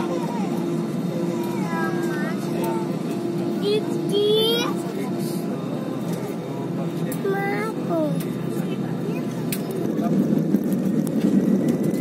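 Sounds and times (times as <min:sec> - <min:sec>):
airliner cabin drone: 0:00.0 - 0:12.0
passengers talking: 0:00.0 - 0:12.0.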